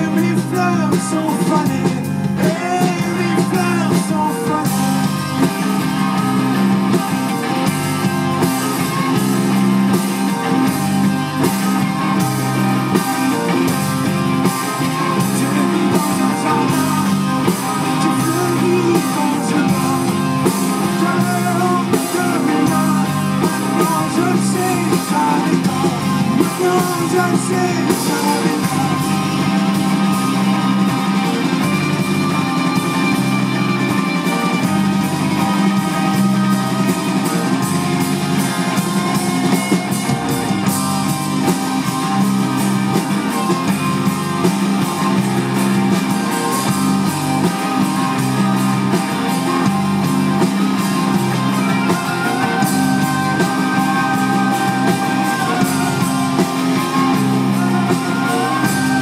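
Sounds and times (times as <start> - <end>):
live rock band playing: 0.0 - 59.0.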